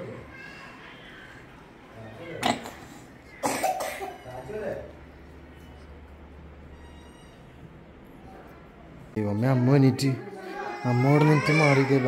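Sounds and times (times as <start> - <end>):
person coughing: 3.4 - 4.2.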